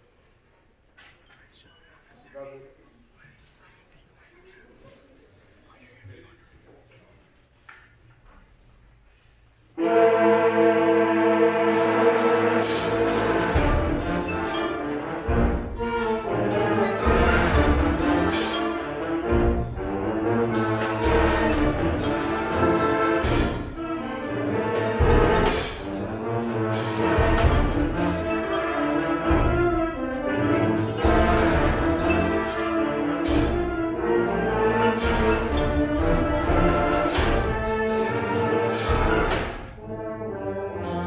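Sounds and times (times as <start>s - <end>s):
concert band playing brass chords: 9.8s - 41.0s
percussion strikes: 11.3s - 40.0s.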